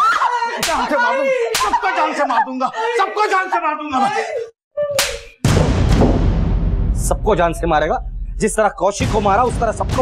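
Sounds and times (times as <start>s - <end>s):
woman crying and shouting: 0.0s - 5.0s
hand slapping a person: 0.6s - 0.9s, 1.5s - 1.8s, 5.0s - 5.4s.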